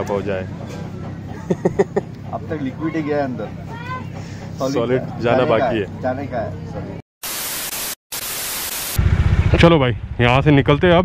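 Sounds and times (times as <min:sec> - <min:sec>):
television static hiss: 0:07.2 - 0:09.0.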